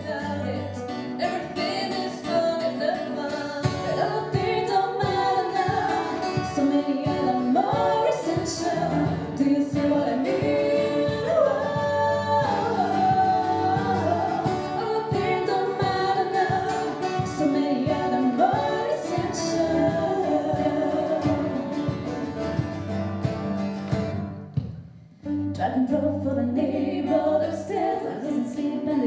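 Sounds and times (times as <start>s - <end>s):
women singing pop-rock song: 0.0s - 22.0s, 25.6s - 29.0s
strummed acoustic guitar: 0.0s - 28.2s.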